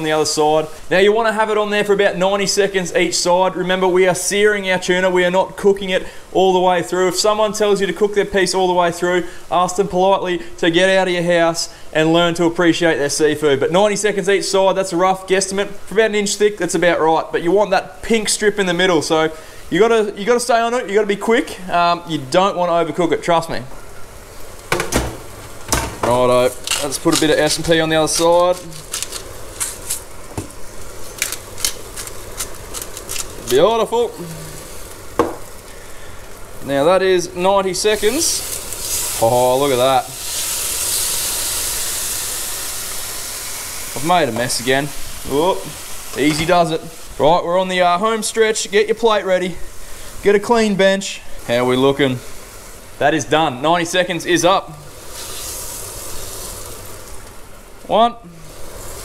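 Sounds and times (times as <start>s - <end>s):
fish sizzling in a frying pan: 23.8s - 59.0s
pepper grinder crunching clicks: 26.5s - 27.4s, 28.1s - 30.1s, 31.2s - 33.6s.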